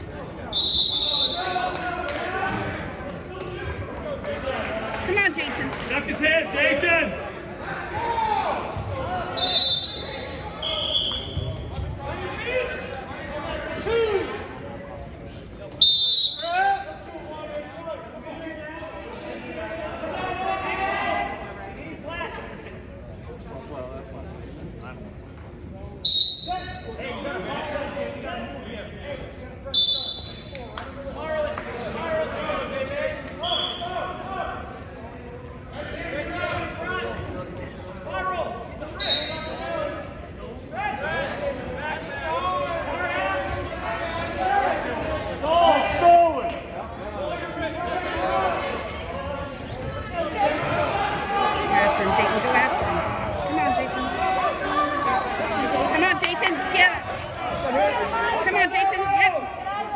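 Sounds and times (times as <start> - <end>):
people talking and calling out: 0.0 - 59.9
referee whistle blasts: 0.5 - 1.5, 9.3 - 11.5, 15.8 - 16.6, 26.0 - 26.9, 29.7 - 30.6, 33.4 - 33.9, 39.0 - 39.6.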